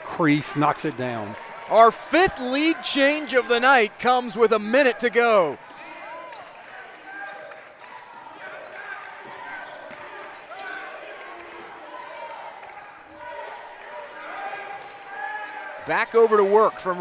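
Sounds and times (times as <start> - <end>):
scattered voices in hall: 0.0 - 17.0.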